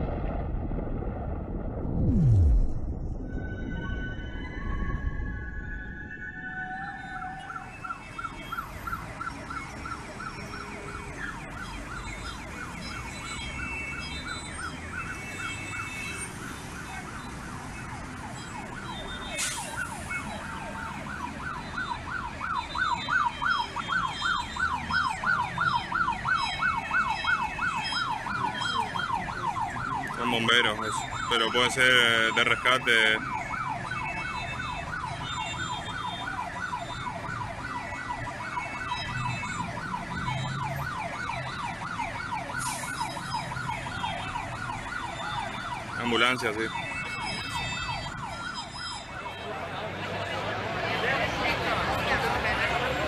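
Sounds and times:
emergency siren yelping: 1.9 - 53.0.

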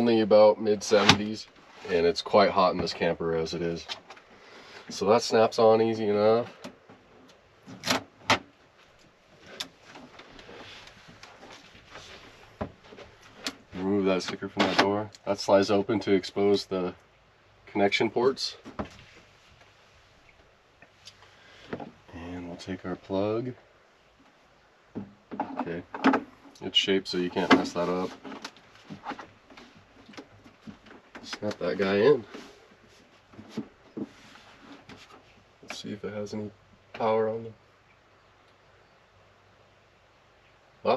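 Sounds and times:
rustling: 0.0 - 5.1, 6.2 - 15.3, 18.2 - 23.2, 24.1 - 35.9.

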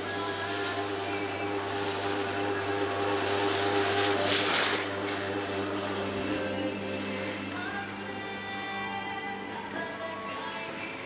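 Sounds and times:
rushing hiss: 0.0 - 8.3
droning hum with held tones: 0.0 - 11.0.

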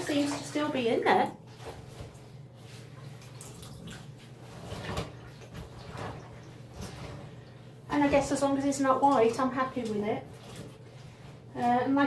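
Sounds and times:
soft water splashes: 0.0 - 11.6
water sloshing in a bucket: 0.0 - 12.0.

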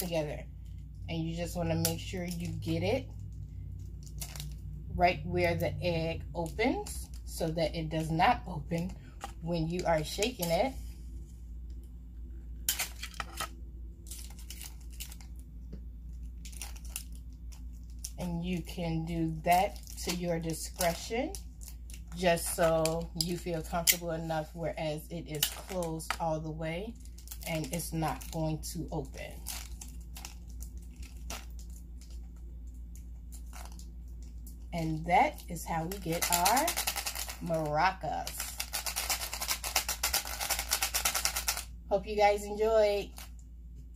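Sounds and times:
steady low hum: 0.0 - 43.9
tape crinkling and tearing: 12.7 - 15.5, 16.1 - 18.2, 27.0 - 28.4, 29.2 - 34.6, 35.4 - 37.5, 38.2 - 41.7.

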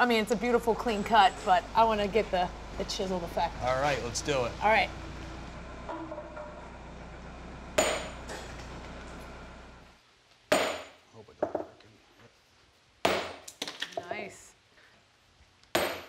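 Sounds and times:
low machine hum: 0.0 - 10.0
sledgehammer striking steel tool: 7.8 - 8.4
sharp metallic clank: 7.8 - 8.5.

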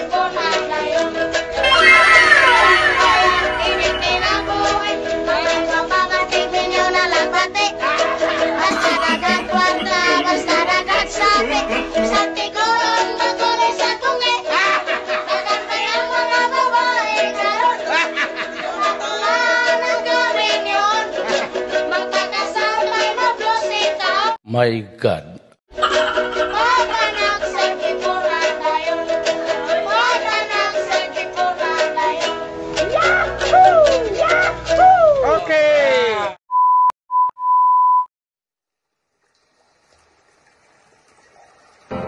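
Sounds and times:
children singing carol: 0.0 - 18.0, 26.4 - 34.7
test tone beep: 1.6 - 4.8
wooden guitars: 8.2 - 12.3.

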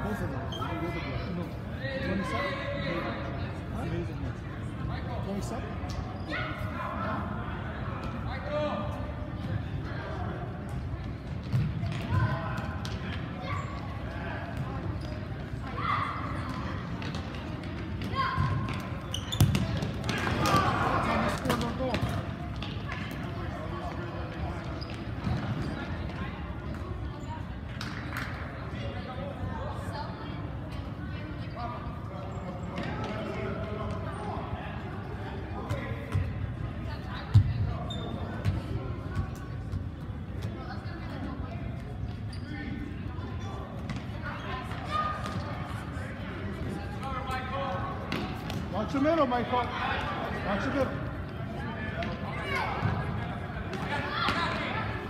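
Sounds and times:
people shouting in a hall: 15.7 - 16.4.

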